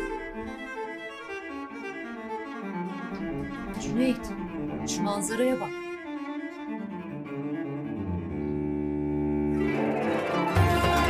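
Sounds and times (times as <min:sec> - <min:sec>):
deep bass note: 0:00.0 - 0:00.7
slow sustained low music notes: 0:00.0 - 0:01.5, 0:03.0 - 0:06.0, 0:07.0 - 0:10.2.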